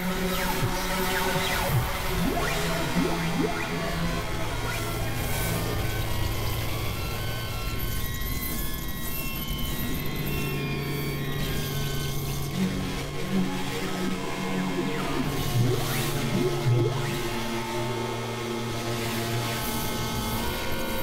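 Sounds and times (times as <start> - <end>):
low synthesizer drone: 0.0 - 7.8, 11.0 - 18.9
pulsing synth note: 0.5 - 4.8, 13.2 - 17.1.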